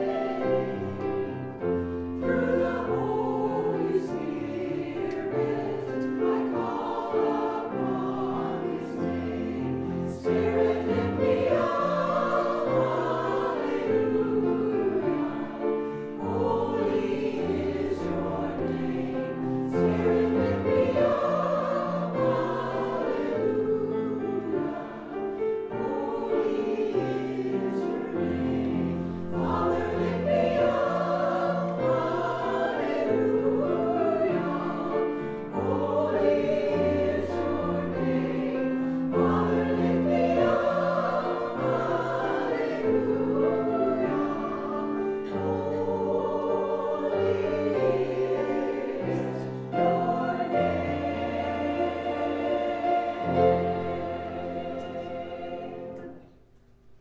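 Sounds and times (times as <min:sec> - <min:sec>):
choir singing slowly: 0:00.0 - 0:57.0.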